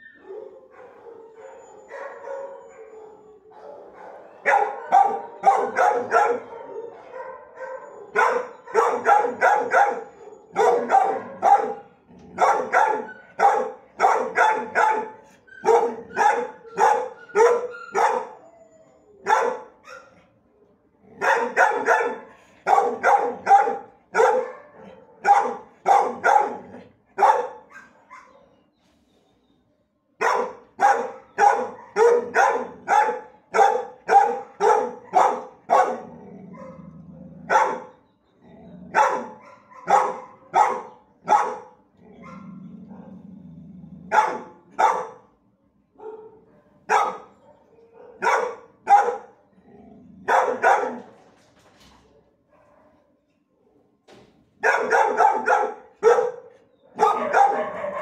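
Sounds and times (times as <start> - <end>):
dogs barking: 0.0 - 18.4, 19.2 - 20.2, 21.2 - 28.6, 30.2 - 38.0, 38.9 - 43.2, 44.1 - 45.3, 46.0 - 49.4, 50.2 - 51.2, 52.4 - 53.1, 54.6 - 58.0.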